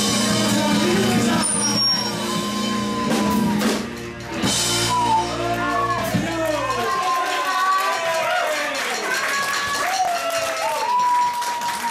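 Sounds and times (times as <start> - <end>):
bass guitar: 0.0 - 7.1
electric guitars: 0.0 - 7.1.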